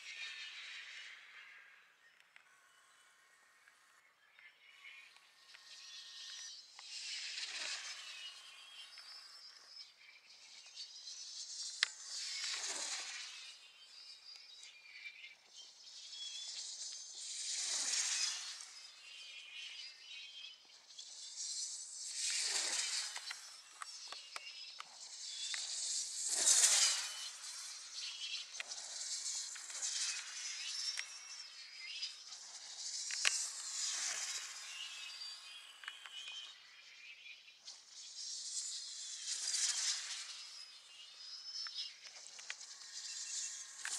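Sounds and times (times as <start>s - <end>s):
glider whooshing past: 25.2s - 28.3s.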